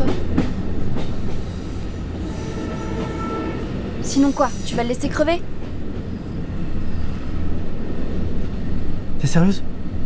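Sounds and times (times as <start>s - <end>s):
train low rumble: 0.0s - 10.0s.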